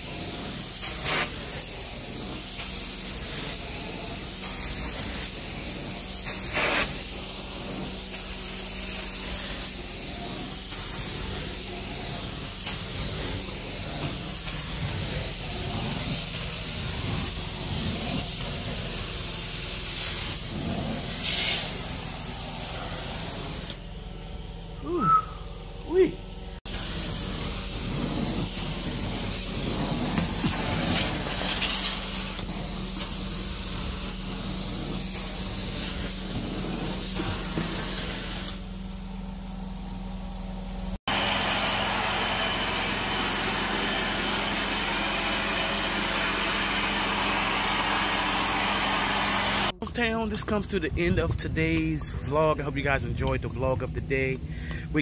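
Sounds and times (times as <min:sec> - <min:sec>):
carpet extraction suction hiss: 0:00.0 - 0:23.8, 0:26.6 - 0:38.7, 0:41.0 - 0:49.8.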